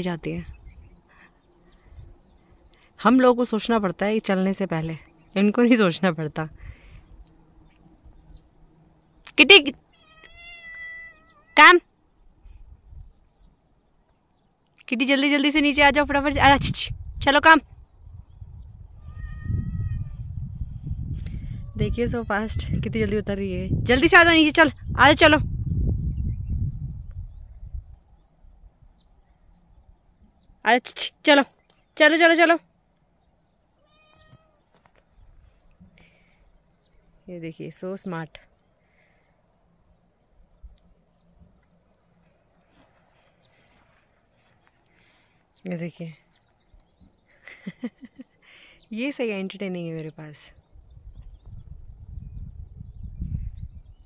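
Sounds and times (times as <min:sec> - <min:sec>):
woman calling: 0:09.3 - 0:11.9, 0:14.8 - 0:17.7, 0:21.6 - 0:25.4, 0:30.6 - 0:32.7
cat meowing: 0:09.9 - 0:11.6, 0:19.0 - 0:20.2, 0:33.8 - 0:34.6.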